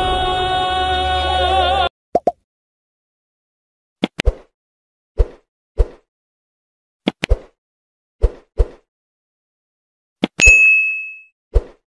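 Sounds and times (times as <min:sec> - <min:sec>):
short pops and clicks: 0:02.1 - 0:02.4
bright bell-like ding: 0:10.4 - 0:11.3.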